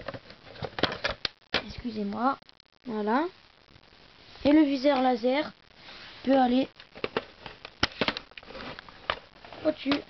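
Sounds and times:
hard plastic parts clicking: 7.0s - 9.2s.

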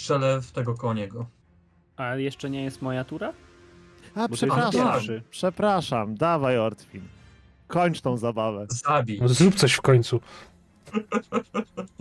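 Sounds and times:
man speaking: 4.1s - 7.0s
man laughing: 10.8s - 12.0s.

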